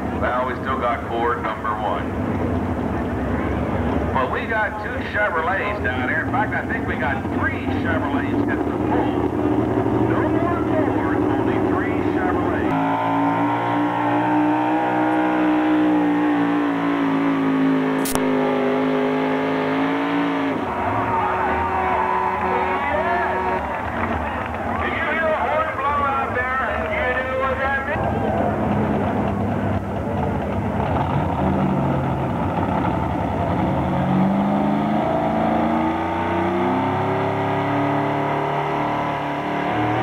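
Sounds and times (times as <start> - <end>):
engine tone rising and sagging: 0.0 - 40.0
pulling-truck engine running: 0.0 - 40.0
announcer over public address: 0.2 - 2.1, 4.1 - 9.3, 10.0 - 13.6, 20.9 - 28.7.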